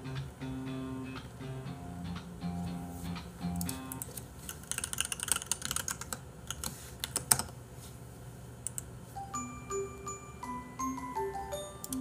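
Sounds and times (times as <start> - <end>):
typing on computer keyboard: 3.9 - 7.5.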